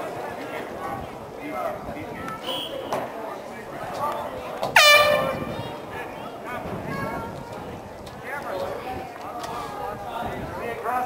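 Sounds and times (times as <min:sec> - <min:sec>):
faint voices: 0:00.0 - 0:11.0
loud buzzy air horn blast: 0:04.8 - 0:05.7.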